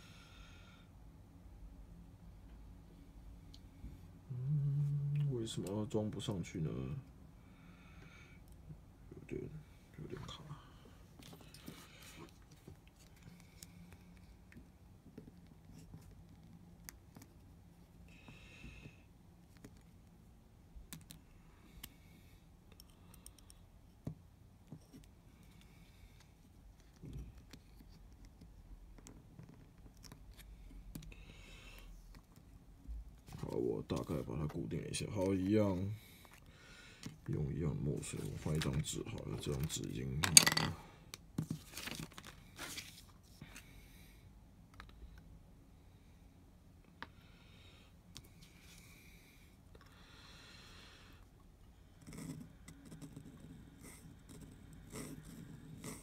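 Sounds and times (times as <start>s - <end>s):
paper rustling: 41.4s - 43.4s.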